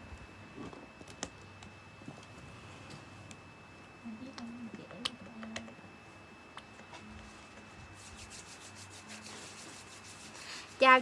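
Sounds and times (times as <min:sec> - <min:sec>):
hands rubbing together: 0:07.9 - 0:11.0.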